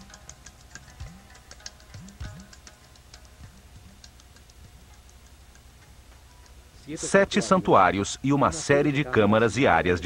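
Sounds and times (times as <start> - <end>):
soft regular ticks: 0.0 - 7.0
man narrating: 6.8 - 10.0.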